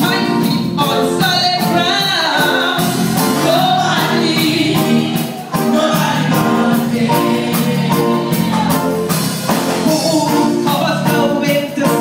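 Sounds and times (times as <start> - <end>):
drums keeping steady beat: 0.0 - 12.0
gospel choir with band: 0.0 - 12.0.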